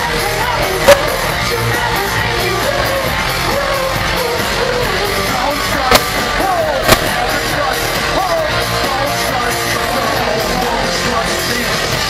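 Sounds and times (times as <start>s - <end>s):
electropop song over pa: 0.0s - 12.0s
voices singing and yelling: 0.0s - 12.0s.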